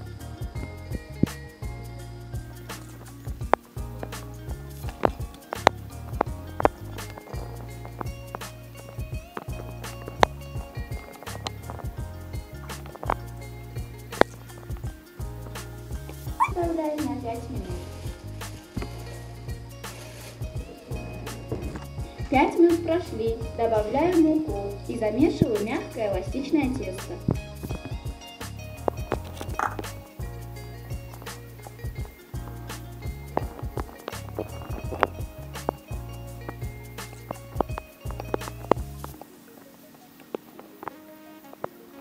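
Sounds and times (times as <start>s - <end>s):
background music with steady beat: 0.0s - 42.0s
person speaking: 16.3s - 19.3s, 19.9s - 27.4s
short voice-like call: 16.4s - 16.6s.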